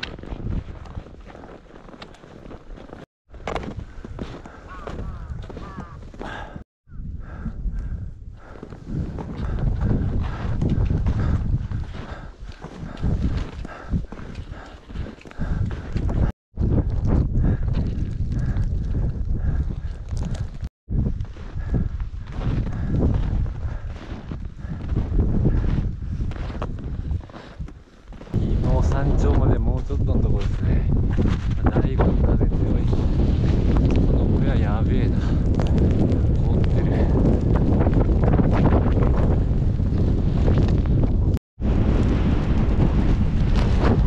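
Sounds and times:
gusty wind buffeting microphone: 0:00.0 - 0:44.0.

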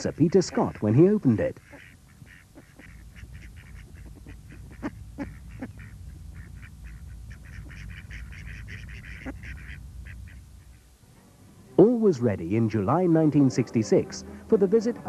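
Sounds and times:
waterfowl calling: 0:00.0 - 0:11.0
low steady rumble: 0:00.0 - 0:15.0.

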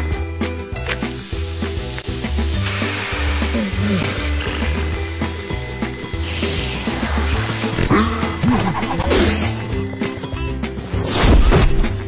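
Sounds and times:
background music with bass line: 0:00.0 - 0:12.0
cartoon food sizzling effect: 0:01.0 - 0:09.6.

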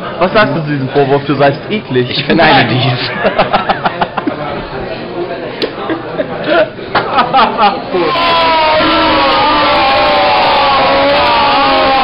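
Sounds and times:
people crying out together: 0:07.9 - 0:12.0.

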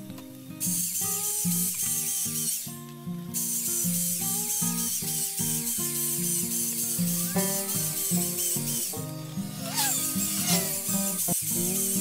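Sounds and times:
plucked guitar music: 0:00.0 - 0:12.0
electric drill boring into log: 0:03.4 - 0:12.0.

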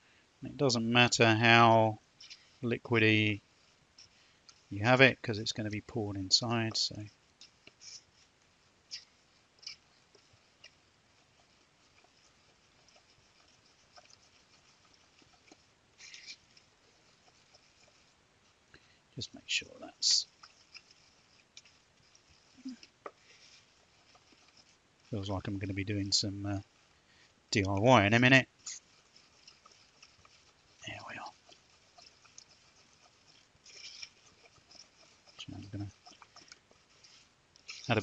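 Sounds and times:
metal spoon stirring plaster: 0:01.0 - 0:38.0
spoon scraping bowl: 0:08.9 - 0:18.2, 0:19.5 - 0:38.0.

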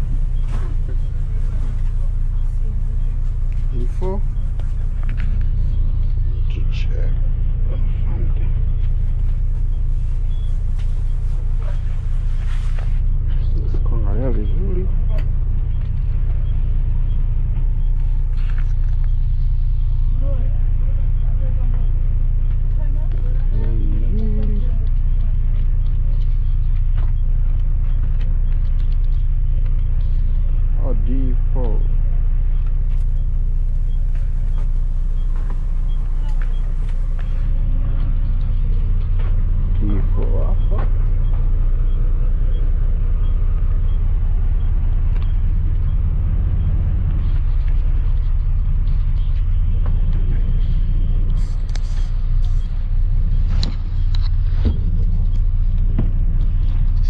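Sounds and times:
bus engine low rumble: 0:00.0 - 0:57.0.

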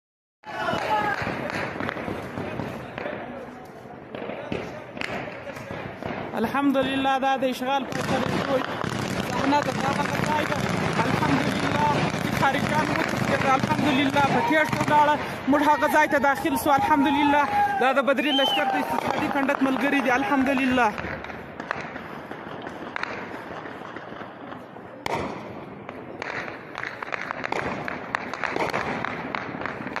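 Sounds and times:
crowd voices and shouting: 0:00.4 - 0:08.1, 0:09.2 - 0:27.4
sharp gunshots: 0:07.8 - 0:17.8, 0:25.0 - 0:30.0.

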